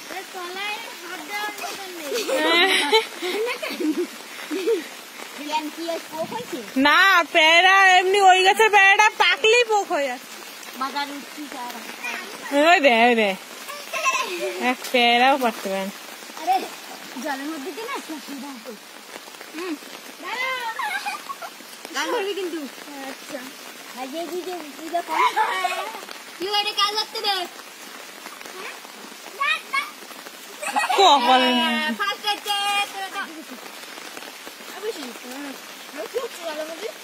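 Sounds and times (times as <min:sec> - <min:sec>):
heavy rain on water: 0:00.0 - 0:37.0
girl's high voice: 0:00.3 - 0:02.6, 0:13.7 - 0:14.6, 0:28.6 - 0:30.0.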